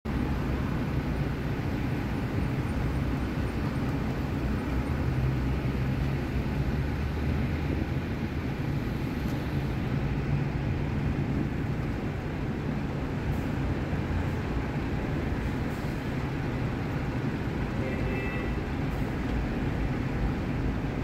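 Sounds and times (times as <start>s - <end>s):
low rumble of street traffic: 0.0s - 21.0s.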